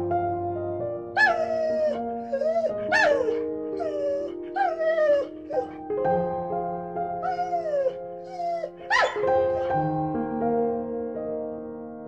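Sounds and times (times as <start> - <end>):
soft background music: 0.0 - 12.0
husky howling: 1.2 - 5.8, 7.2 - 9.7.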